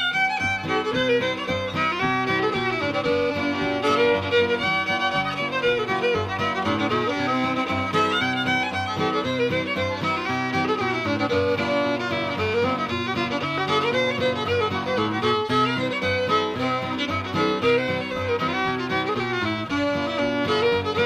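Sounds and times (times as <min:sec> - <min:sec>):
fiddle tune: 0:00.0 - 0:21.0
guitar accompaniment: 0:00.0 - 0:21.0.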